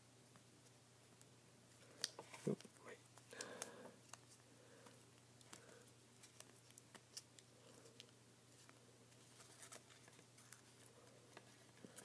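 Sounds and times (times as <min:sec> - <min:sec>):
paper clicks and rustles: 0:05.4 - 0:12.0.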